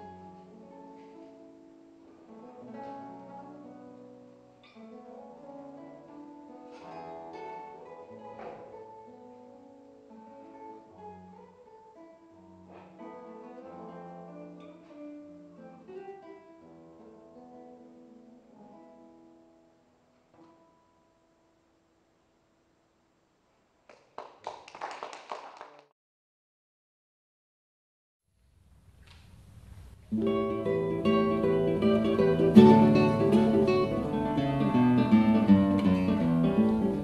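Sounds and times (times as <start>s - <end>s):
classical guitar fingerstyle: 0.0s - 21.5s, 29.1s - 37.0s.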